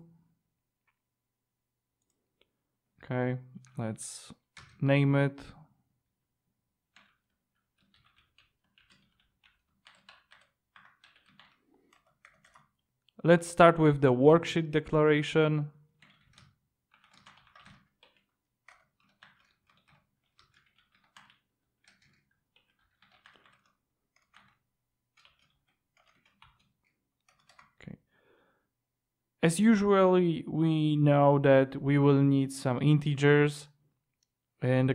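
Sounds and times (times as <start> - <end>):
faint computer keyboard typing: 3.6 - 4.8, 6.9 - 13.2, 15.9 - 28.0.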